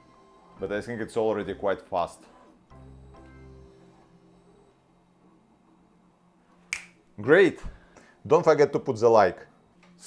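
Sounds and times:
faint electrical hum: 0.0s - 10.0s
sharp click: 6.7s - 7.0s.

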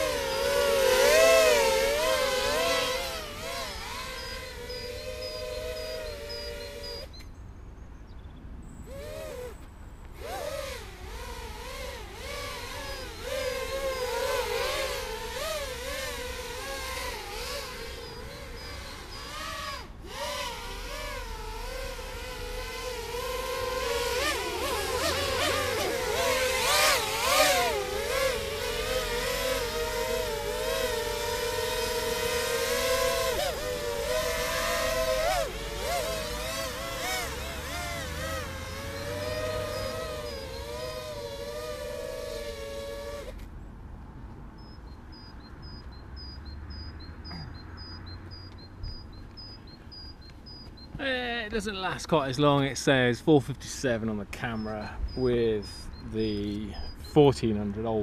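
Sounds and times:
drone motors whining: 0.0s - 7.3s, 8.7s - 43.5s, 44.6s - 52.7s, 53.7s - 58.0s.

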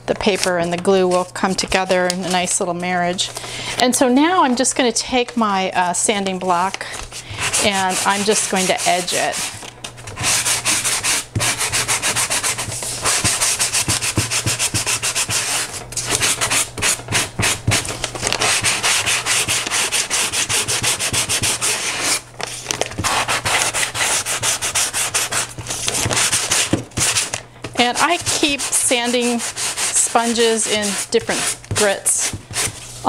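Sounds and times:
sanding sponge rubbing a board edge: 10.2s - 17.8s, 18.5s - 22.2s, 23.0s - 25.5s, 26.2s - 32.8s.

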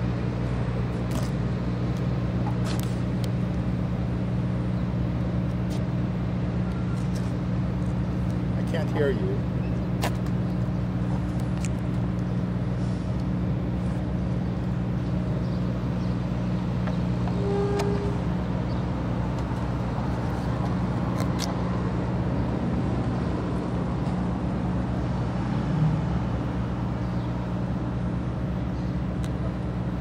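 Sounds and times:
motor humming: 10.4s - 21.0s
brief higher tone: 17.2s - 18.3s.

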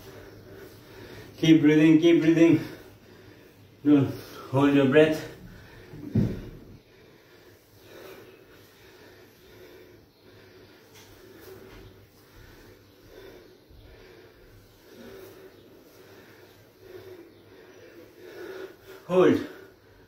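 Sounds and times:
man breathing heavily: 0.0s - 20.0s.

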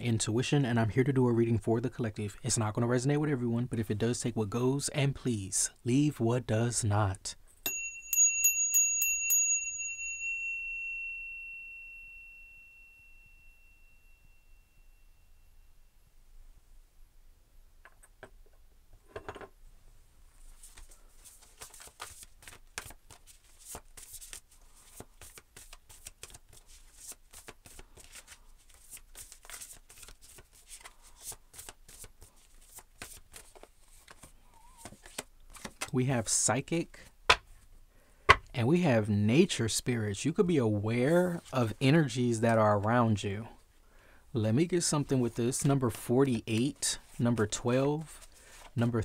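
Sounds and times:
small high-pitched bell ringing: 7.6s - 16.0s
cards being shuffled: 20.6s - 35.9s.

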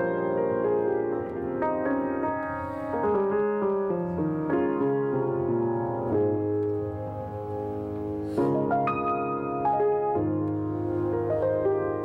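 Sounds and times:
acoustic grand piano playing: 0.0s - 12.0s.

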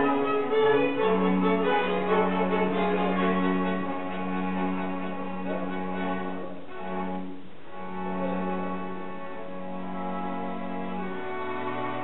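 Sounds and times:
string quartet playing held notes: 0.0s - 12.0s.

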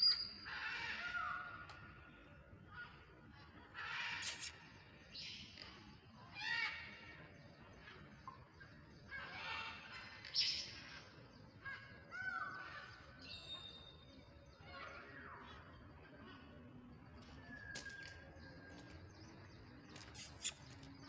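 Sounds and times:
short harsh bird calls: 3.8s - 5.6s, 19.9s - 20.9s.

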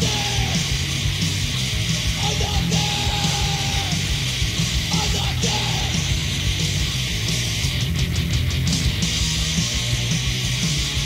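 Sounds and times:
punk band playing loud: 0.0s - 11.0s.

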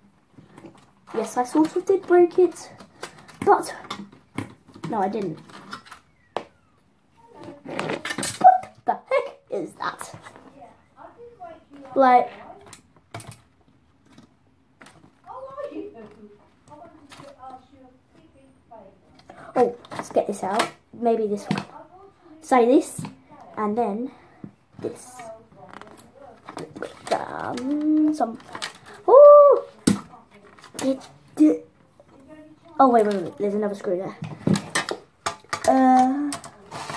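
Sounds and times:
plastic and metal parts rattling: 0.4s - 6.3s, 7.3s - 8.8s, 12.6s - 17.6s, 24.8s - 31.3s, 32.0s - 36.9s
boy's effort exclamations: 29.1s - 29.7s
tool clicks and scrapes: 36.3s - 36.9s.

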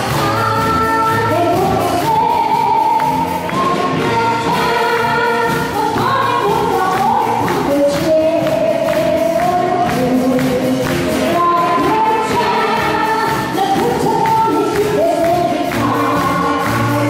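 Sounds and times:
wind band with saxophones: 0.0s - 8.8s, 9.5s - 17.0s
woman singing into microphone: 0.0s - 17.0s
audience clapping along: 1.5s - 17.0s.

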